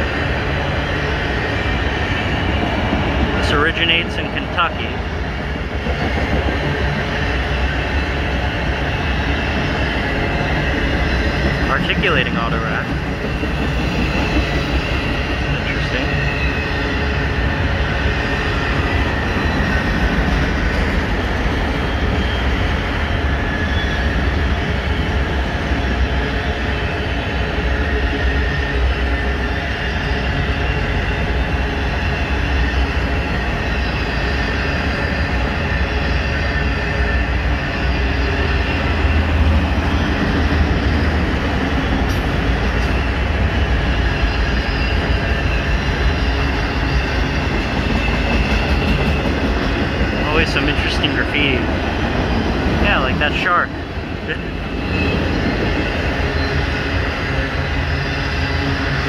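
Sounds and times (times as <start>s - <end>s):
steel wheels rumbling on rail: 0.0s - 59.0s
high wheel squeal: 13.3s - 27.2s, 27.8s - 51.3s, 52.2s - 59.0s.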